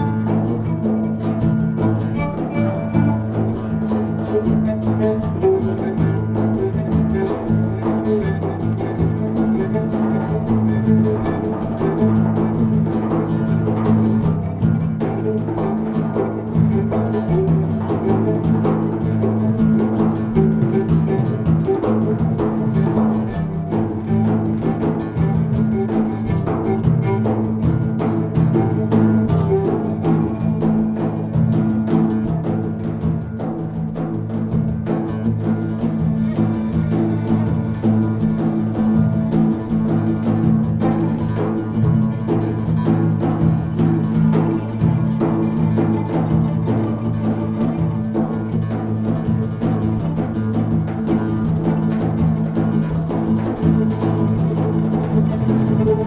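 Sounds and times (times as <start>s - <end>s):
bowed viola: 0.0s - 56.0s
frame drums: 0.0s - 56.0s
plucked oud: 0.0s - 56.0s.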